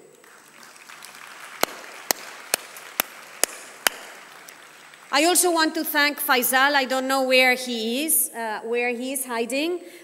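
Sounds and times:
sharp claps close to microphone: 0:00.0 - 0:05.7
audience applauding: 0:00.0 - 0:06.2.

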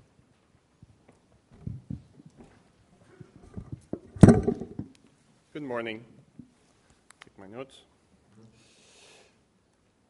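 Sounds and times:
soft handling knocks and bumps: 0:00.4 - 0:05.0.

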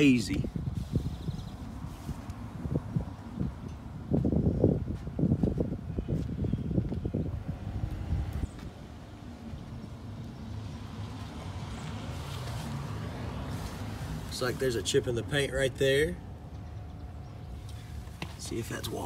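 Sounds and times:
wind buffeting microphone: 0:00.0 - 0:10.4
distant traffic rumble: 0:00.0 - 0:19.0.

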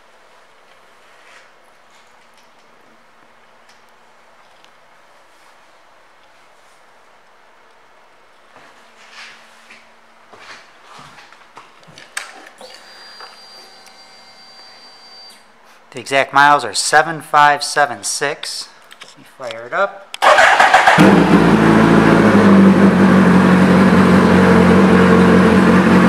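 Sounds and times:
faint steady hum: 0:00.0 - 0:20.2.

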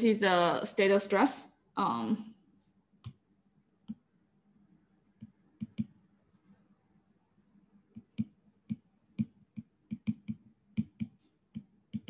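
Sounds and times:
stylus clicking on glass screen: 0:05.2 - 0:06.0, 0:07.9 - 0:12.0.

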